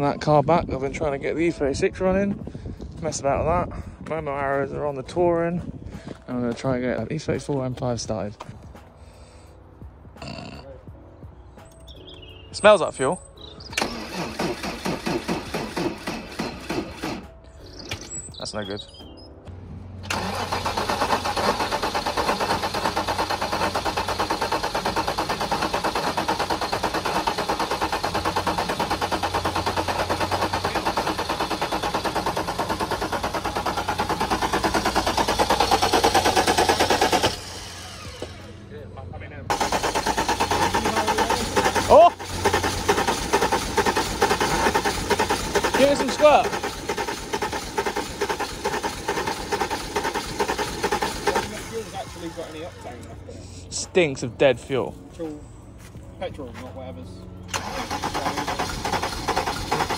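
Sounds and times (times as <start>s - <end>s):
car engine cranking on starter: 13.7s - 18.1s, 20.0s - 38.5s, 39.5s - 53.1s, 57.4s - 59.9s.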